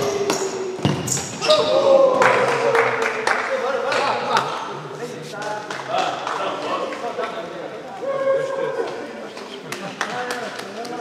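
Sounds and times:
ball kicked and bouncing on floor: 0.2 - 1.4.

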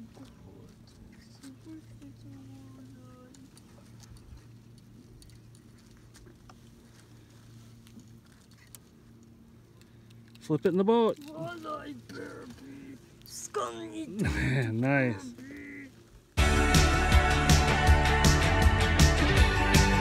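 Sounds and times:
faint low hum: 0.0 - 16.4
faint voice: 15.2 - 16.0.

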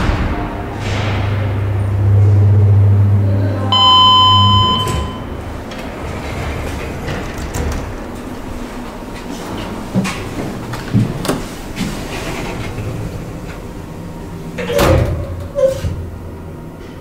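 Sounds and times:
elevator door mechanism: 0.0 - 17.0
elevator machinery hum: 0.0 - 17.0
electronic arrival chime: 3.7 - 5.3.

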